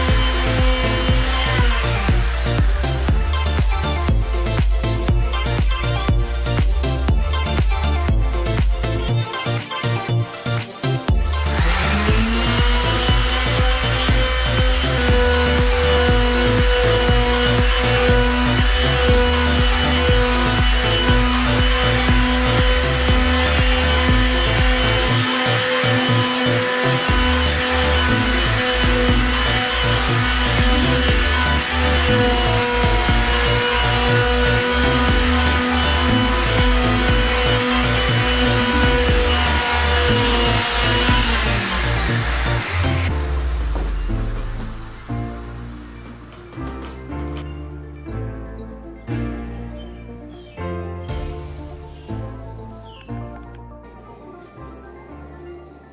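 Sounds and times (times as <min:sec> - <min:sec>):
electric palm sander running: 0:00.0 - 0:05.5, 0:11.1 - 0:45.0
background music with a beat: 0:00.0 - 0:55.9.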